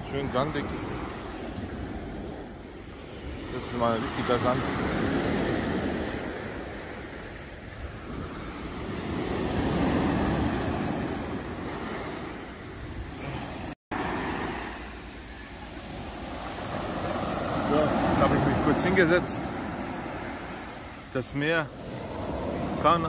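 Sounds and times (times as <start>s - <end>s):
surf washing up beach: 0.0s - 23.0s.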